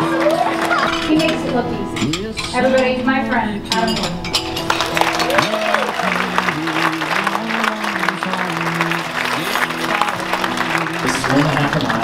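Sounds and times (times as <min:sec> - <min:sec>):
plates glasses and cutlery clinking: 0:00.0 - 0:05.9
background music: 0:00.0 - 0:12.0.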